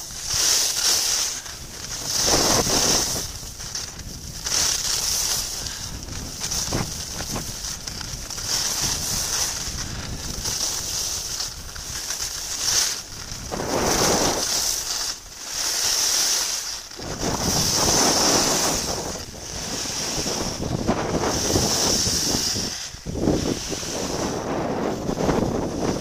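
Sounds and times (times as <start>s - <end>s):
skis scraping over snow: 0.0s - 26.0s
wind on microphone: 1.5s - 14.7s, 16.9s - 26.0s.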